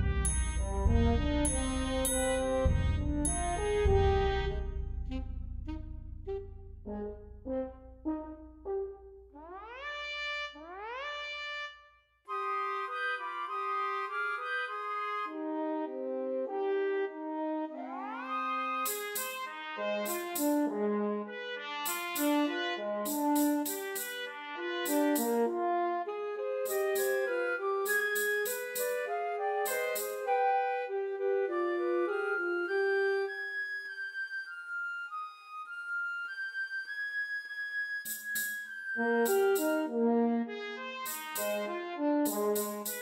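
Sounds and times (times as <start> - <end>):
orchestral film music: 0.0 - 10.0, 12.3 - 43.0
sharp clicking strikes: 18.9 - 20.7, 21.8 - 22.4, 23.0 - 25.5, 26.6 - 30.3, 38.1 - 39.9, 41.0 - 43.0.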